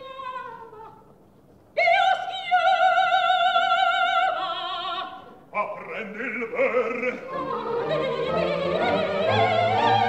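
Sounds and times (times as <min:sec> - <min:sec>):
operatic singing: 0:01.8 - 0:10.0.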